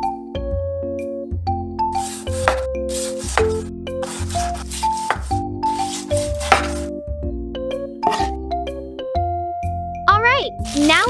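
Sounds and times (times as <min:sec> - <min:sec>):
knife slicing fish on board: 0:02.0 - 0:06.9.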